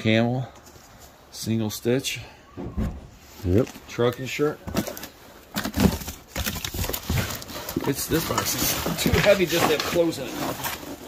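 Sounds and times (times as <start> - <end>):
cardboard rustling: 3.4 - 11.0.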